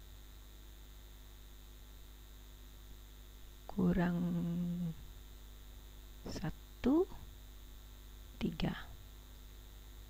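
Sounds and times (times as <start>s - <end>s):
low electrical hum: 0.0s - 10.0s
person murmuring and whispering: 3.8s - 5.0s.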